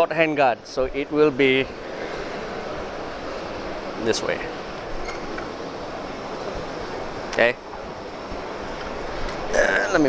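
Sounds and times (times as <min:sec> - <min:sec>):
busy exhibition hall noise: 0:00.0 - 0:10.0.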